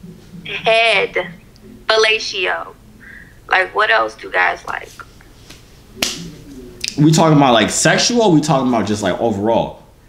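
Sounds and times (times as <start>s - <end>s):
person talking: 0.4s - 2.8s, 3.5s - 5.0s
breathy hiss: 2.9s - 3.6s.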